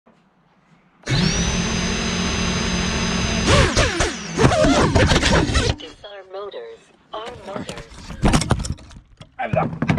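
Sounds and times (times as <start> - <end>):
electric motors whining: 1.0 - 6.1
person speaking: 5.3 - 8.3.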